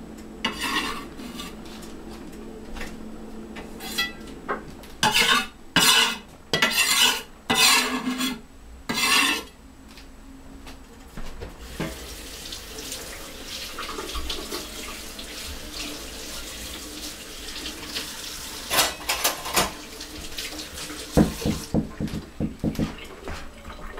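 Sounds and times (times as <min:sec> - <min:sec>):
tap water running into sink: 0:11.6 - 0:23.9
clinks and knocks of dishes: 0:18.7 - 0:19.8.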